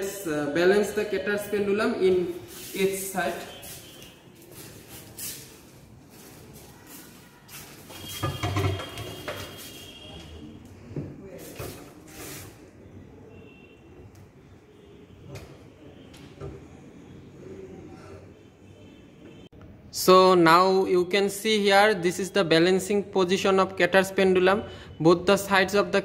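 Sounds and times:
metal rod knocking and scraping: 0:08.1 - 0:09.6.

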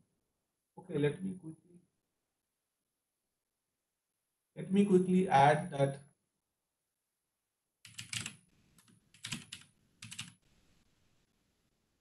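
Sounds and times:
typing on computer keyboard: 0:07.8 - 0:10.4.

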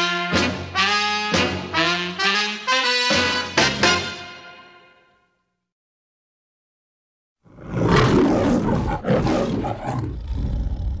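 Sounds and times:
lion roaring: 0:07.5 - 0:11.0.

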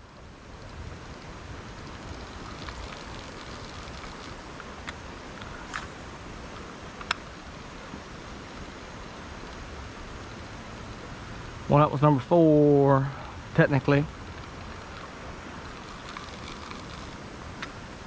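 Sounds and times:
creek water running over rocks: 0:00.0 - 0:18.0.

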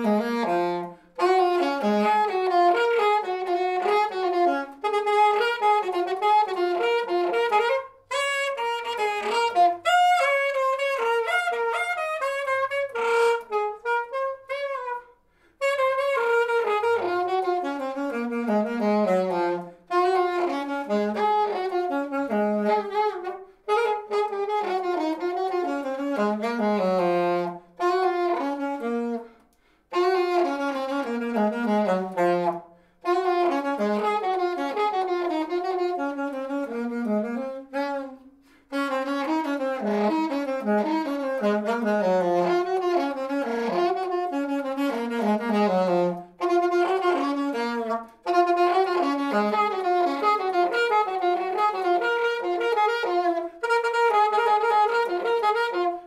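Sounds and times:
solo saxophone melody: 0:00.0 - 0:56.0.

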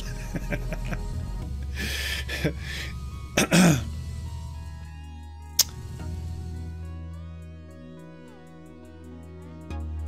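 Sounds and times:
man laughing breathily: 0:00.0 - 0:04.0
man clearing his throat: 0:03.4 - 0:03.9.

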